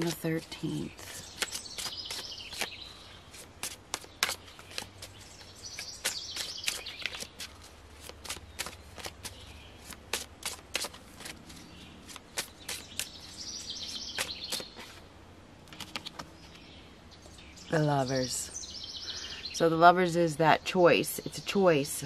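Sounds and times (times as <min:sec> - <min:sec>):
cards shuffling: 0:00.0 - 0:02.7, 0:03.3 - 0:15.0, 0:15.6 - 0:16.6
bird chirping: 0:00.0 - 0:10.0, 0:11.4 - 0:15.0, 0:15.8 - 0:22.0.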